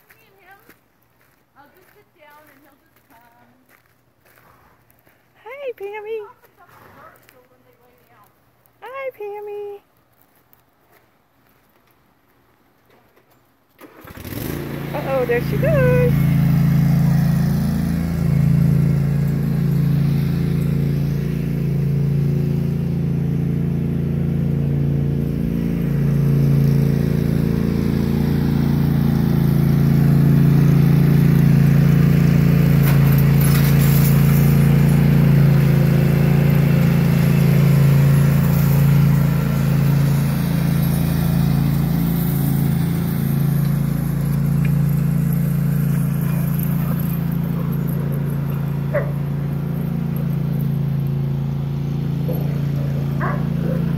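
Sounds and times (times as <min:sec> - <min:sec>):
lawn tractor engine running: 0:13.8 - 0:53.9.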